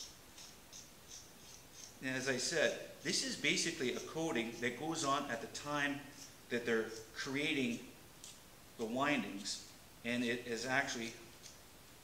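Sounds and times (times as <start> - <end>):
knife scraping wire: 0.0 - 2.3, 3.0 - 8.4, 11.0 - 11.6.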